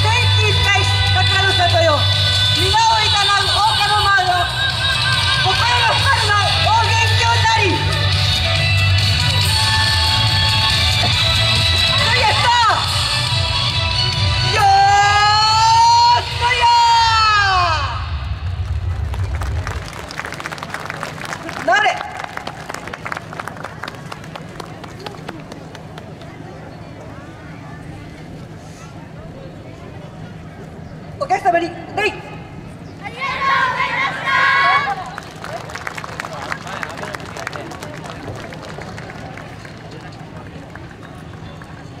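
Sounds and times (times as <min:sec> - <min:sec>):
audience applause: 0:18.6 - 0:26.4, 0:34.9 - 0:42.0.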